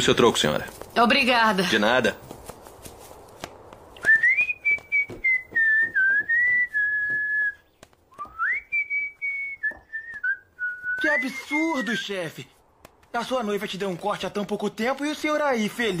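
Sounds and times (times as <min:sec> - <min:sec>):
man whistling a tune: 0:04.0 - 0:12.0.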